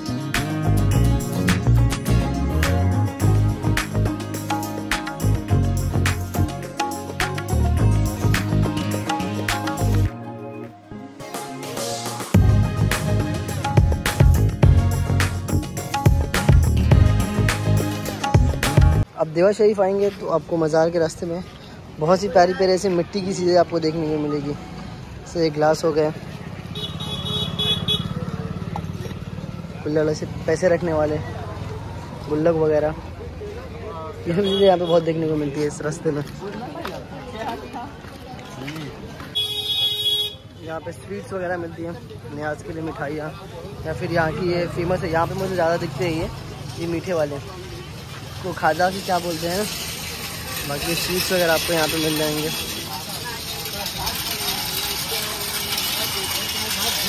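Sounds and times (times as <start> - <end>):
faint voices of passers-by: 0.0 - 57.0
street noise hubbub: 0.0 - 57.0
motorcycle engine running: 26.5 - 30.6, 43.8 - 57.0.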